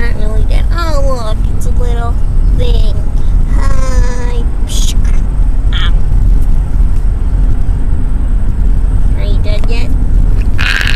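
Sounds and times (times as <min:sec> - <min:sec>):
steady low rumble: 0:00.0 - 0:10.9.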